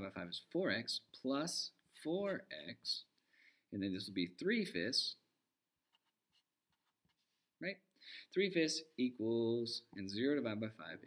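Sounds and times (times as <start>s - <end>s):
marker scratching on paper: 5.8s - 7.3s.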